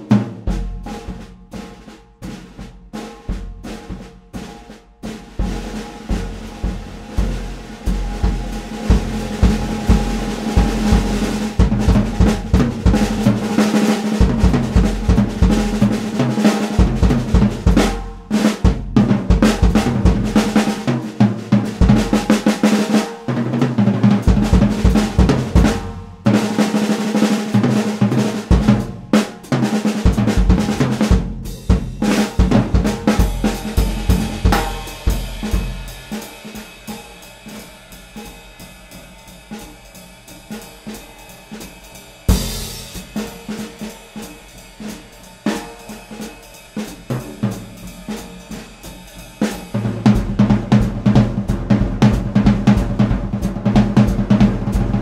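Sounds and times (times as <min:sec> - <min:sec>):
jazz drum solo: 0:00.0 - 0:55.0
cymbal strokes: 0:33.0 - 0:50.0.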